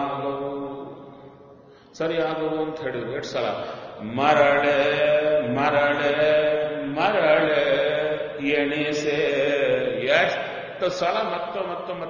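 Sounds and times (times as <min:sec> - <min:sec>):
man chanting devotional verse: 0:00.0 - 0:12.0.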